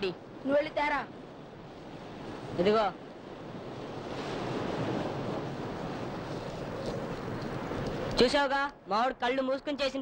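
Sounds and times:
wind: 0:00.0 - 0:10.0
surf washing on a beach: 0:01.1 - 0:08.3.

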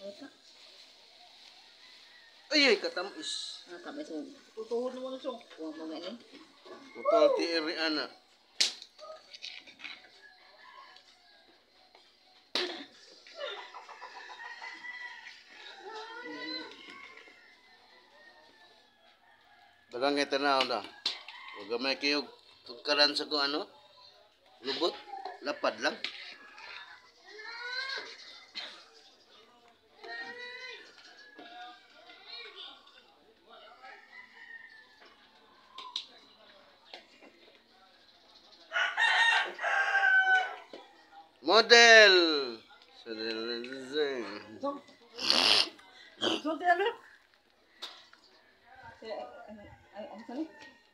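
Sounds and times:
rooster crowing: 0:38.7 - 0:40.7.

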